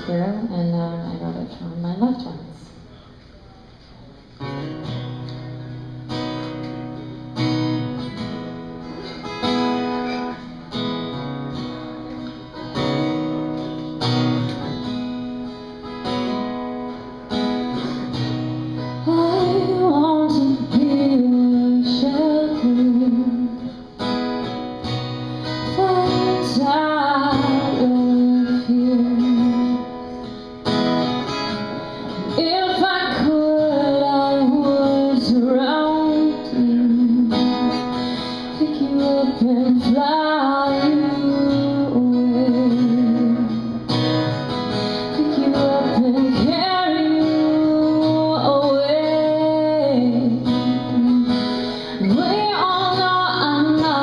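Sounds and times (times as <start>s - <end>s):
woman singing: 0.0s - 2.6s, 18.8s - 23.8s, 25.4s - 30.1s, 32.1s - 44.2s, 45.0s - 54.0s
acoustic guitar chords: 0.0s - 54.0s.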